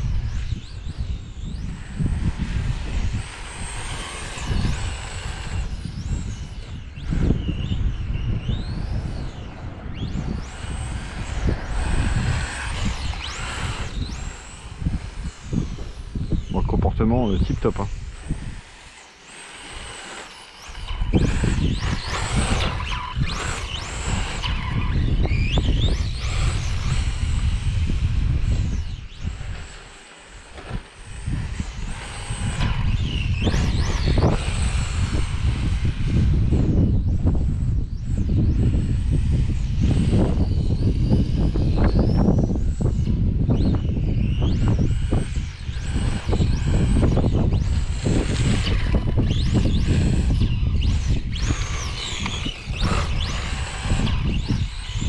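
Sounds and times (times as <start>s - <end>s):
electric motor whining: 0.0s - 55.0s
wind rumble on microphone: 0.0s - 55.0s.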